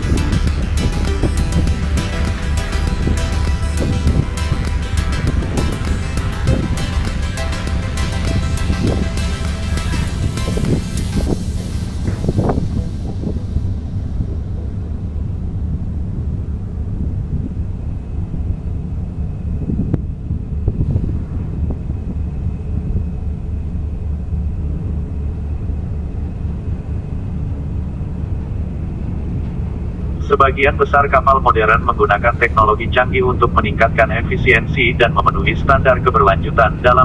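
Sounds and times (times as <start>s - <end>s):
music: 0.0s - 15.8s, 30.0s - 37.0s
wind on microphone: 0.0s - 27.3s
boat engine droning: 0.0s - 37.0s.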